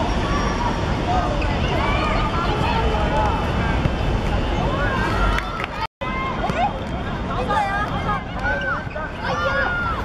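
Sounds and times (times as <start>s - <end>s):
children calling and shouting: 0.0s - 10.0s
outdoor background noise: 0.0s - 10.0s.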